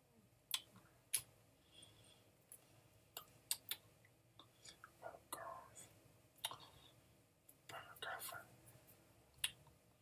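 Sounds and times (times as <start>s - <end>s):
faint whispering: 4.4s - 9.0s.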